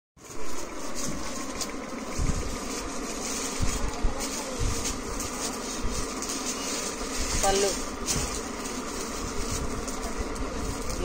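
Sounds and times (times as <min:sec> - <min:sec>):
buzzing hum: 0:00.2 - 0:11.0.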